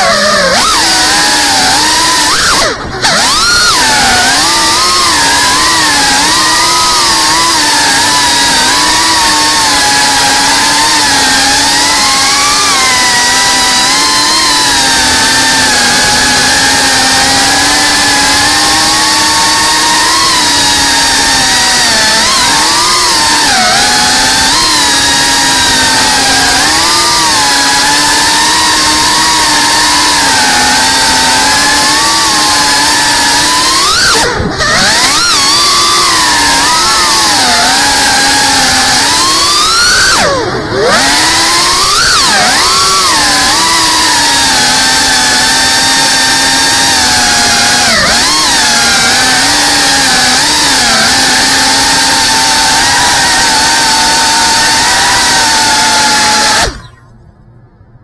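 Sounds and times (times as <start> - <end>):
quadcopter motors whining: 0.0 - 57.2.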